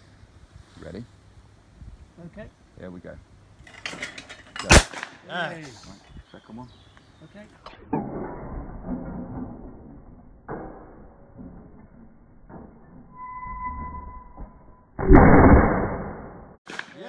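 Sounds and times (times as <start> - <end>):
shotgun shot: 4.7 - 5.2, 15.0 - 16.8.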